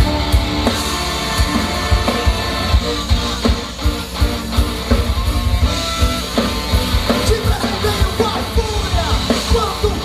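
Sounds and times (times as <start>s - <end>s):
distorted guitar: 0.0s - 10.0s
drum kit beat: 0.0s - 10.0s.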